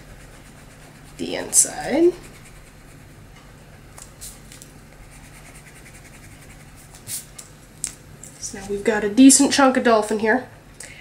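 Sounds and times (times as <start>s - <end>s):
eraser rubbing on paper: 0.0s - 3.2s, 5.0s - 7.3s.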